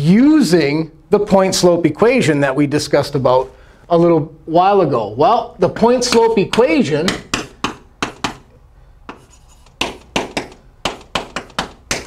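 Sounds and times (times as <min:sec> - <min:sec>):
chalk tapping and scratching: 0:06.0 - 0:12.0.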